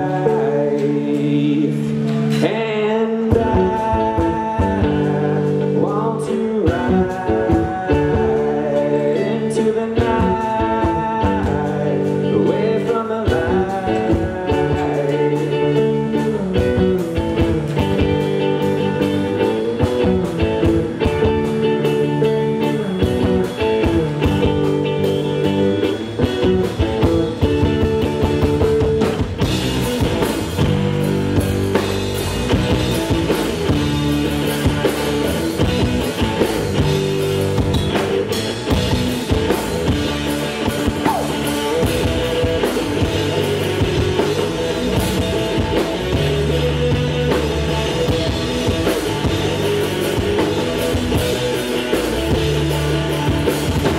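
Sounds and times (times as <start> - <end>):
drum kit: 0.0 - 53.9
electric bass: 0.0 - 53.9
electric guitar: 0.0 - 53.9.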